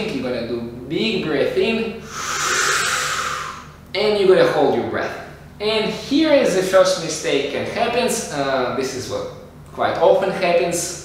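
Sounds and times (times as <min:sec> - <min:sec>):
man inhaling deeply: 0:02.0 - 0:03.8.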